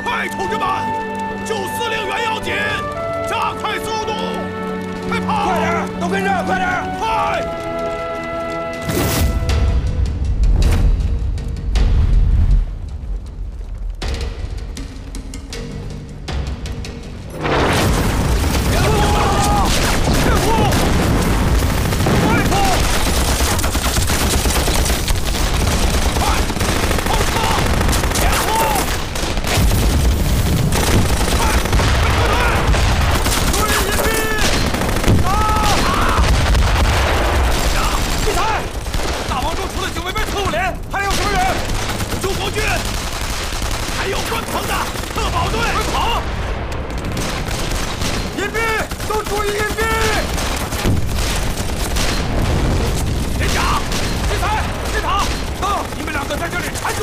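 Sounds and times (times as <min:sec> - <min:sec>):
music: 0:00.0 - 0:57.0
men shouting: 0:05.0 - 0:07.6, 0:18.6 - 0:21.0, 0:26.2 - 0:29.0, 0:31.3 - 0:34.6, 0:35.2 - 0:36.4, 0:37.6 - 0:38.8, 0:44.0 - 0:46.3
low rumble: 0:09.1 - 0:15.4
explosions: 0:17.3 - 0:57.0
rifle and machine-gun fire: 0:17.4 - 0:57.0.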